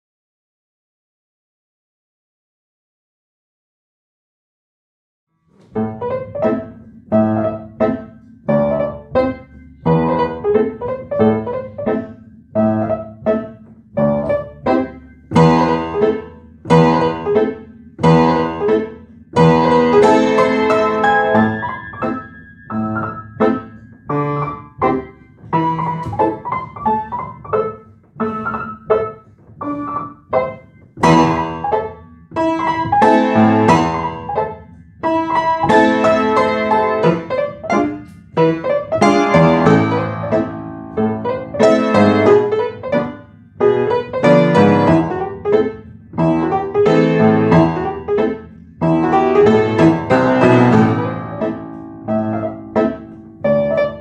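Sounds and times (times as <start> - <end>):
solo piano piece: 5.4 - 54.0.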